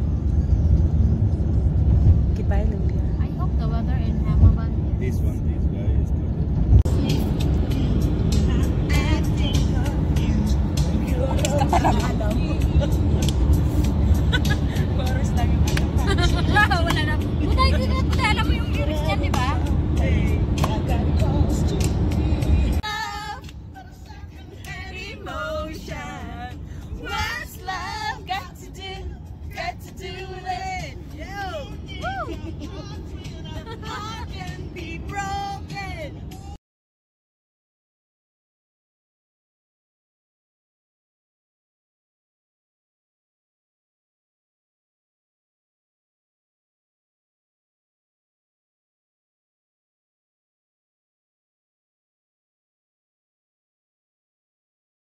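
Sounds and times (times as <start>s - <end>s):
vehicle road and engine rumble: 0.0s - 36.6s
passengers singing together: 20.0s - 36.0s.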